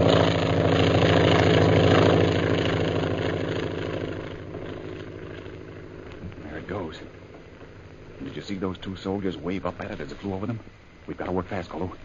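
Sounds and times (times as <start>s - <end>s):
propeller airplane flying overhead: 0.0s - 12.0s.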